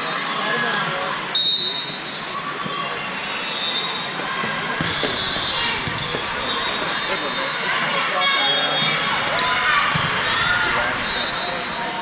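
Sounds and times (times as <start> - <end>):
crowd chatter: 0.0 - 12.0
volleyballs struck and bouncing: 4.2 - 7.0.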